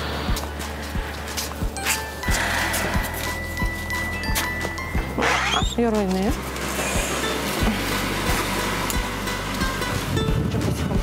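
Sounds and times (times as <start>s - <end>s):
background music with steady beat: 0.0s - 11.0s.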